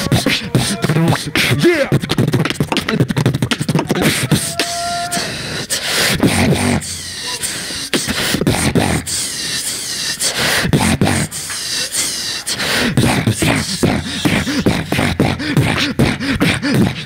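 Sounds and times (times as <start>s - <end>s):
beatboxing through microphones: 0.0s - 17.0s.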